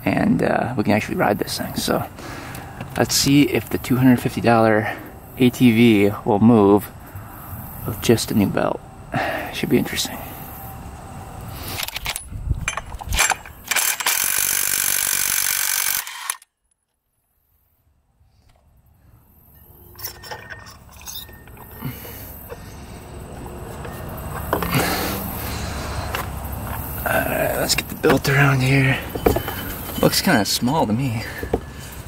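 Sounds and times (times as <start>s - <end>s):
wrench loud mechanical rattle: 11.7s - 16.5s
metal clicks and clinks: 11.8s - 16.4s, 19.9s - 22.7s.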